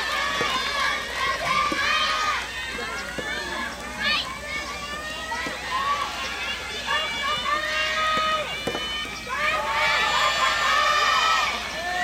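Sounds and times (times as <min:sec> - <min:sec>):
many voices calling and shouting: 0:00.0 - 0:12.0.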